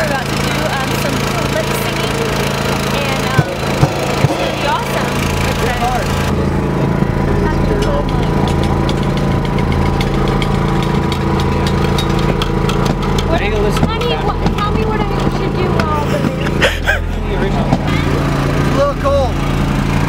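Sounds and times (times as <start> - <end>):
people talking: 0.0 - 6.3, 7.3 - 8.4, 13.3 - 19.4
portable generator running: 0.0 - 20.0
sharp knocks: 3.3 - 5.1.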